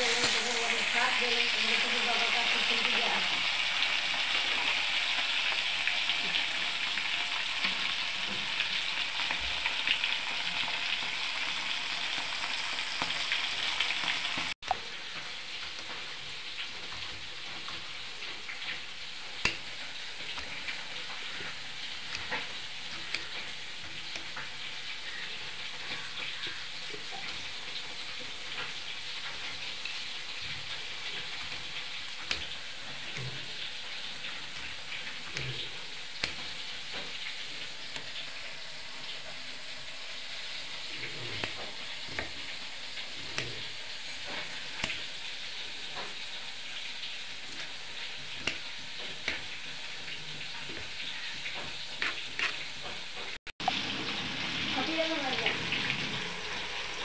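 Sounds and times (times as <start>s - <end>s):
fish sizzling in hot oil: 0.0s - 57.0s.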